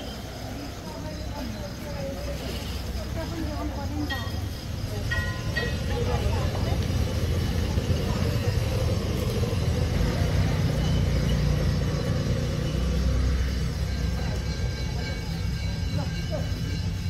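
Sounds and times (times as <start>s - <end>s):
indistinct chatter of people: 0.0s - 17.0s
low street rumble: 0.0s - 17.0s.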